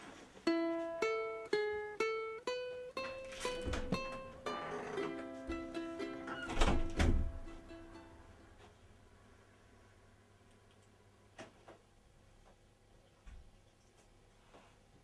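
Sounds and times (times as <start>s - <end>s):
ukulele plucked melody: 0.4s - 8.7s.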